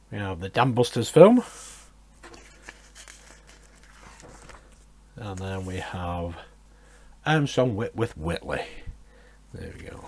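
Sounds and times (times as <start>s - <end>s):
magazine page turning: 2.2s - 5.8s.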